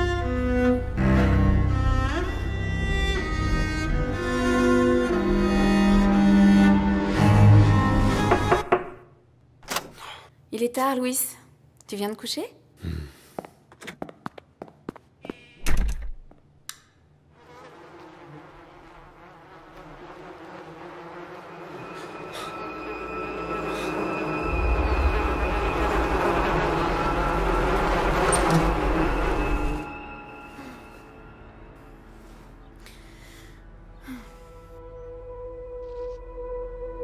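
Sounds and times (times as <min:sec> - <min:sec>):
buzzing: 0:17.3 - 0:30.9
low rumble: 0:19.6 - 0:30.4
high ringing tones: 0:21.6 - 0:31.9.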